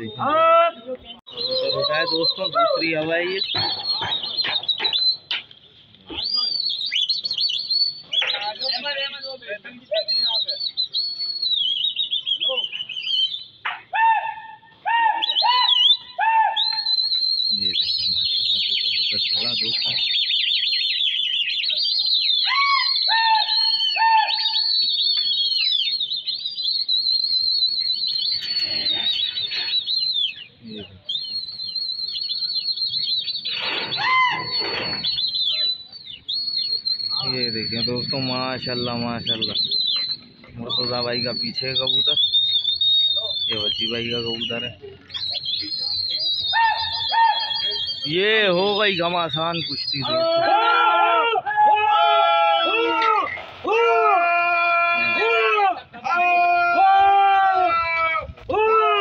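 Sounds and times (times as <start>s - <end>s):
birds chirping and twittering: 1.0s - 14.0s, 15.2s - 50.5s
low whistled notes: 1.3s - 13.6s, 15.2s - 50.4s
people shouting: 13.9s - 16.6s, 34.0s - 34.6s, 50.0s - 59.0s.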